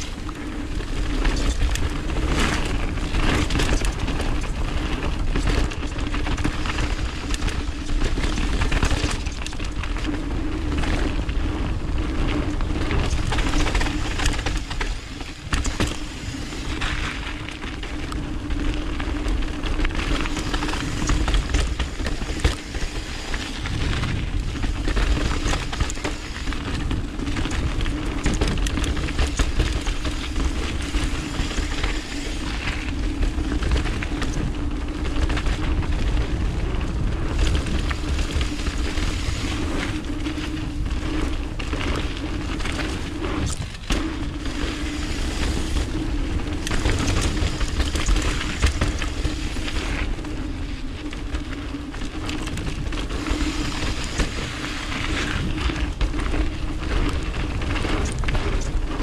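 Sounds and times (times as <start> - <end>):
bike rattling over bumps: 0.0 - 59.0
bike tyres rolling on gravel: 0.0 - 59.0
wind rumbling on microphone: 0.0 - 59.0.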